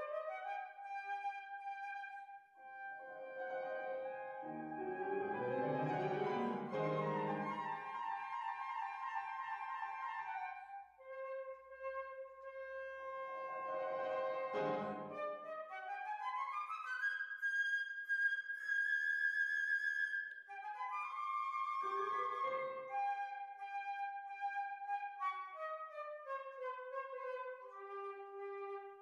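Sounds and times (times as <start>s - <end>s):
flute playing: 0.0s - 29.0s
piano chords: 3.0s - 7.8s, 13.8s - 15.2s.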